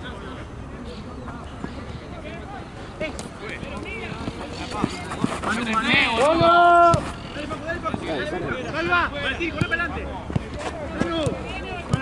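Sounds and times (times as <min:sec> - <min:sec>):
players shouting: 0:03.5 - 0:10.1
ball being kicked: 0:10.4 - 0:12.0.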